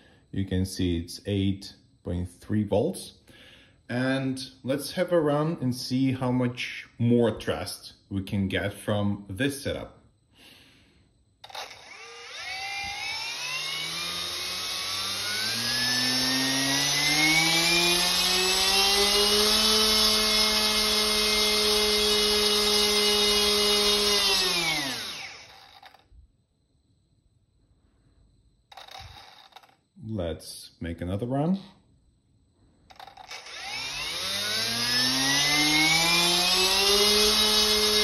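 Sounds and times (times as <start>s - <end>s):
electric motor whine: 11.4s - 26.0s, 28.7s - 29.8s, 32.9s - 38.0s.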